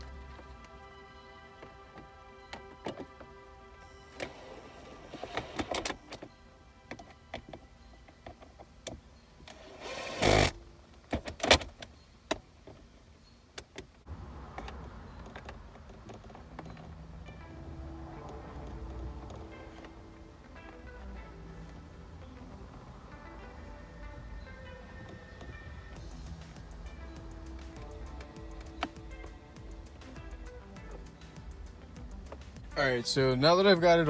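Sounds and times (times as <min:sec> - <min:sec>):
background music: 0:00.0 - 0:10.5, 0:16.4 - 0:34.0.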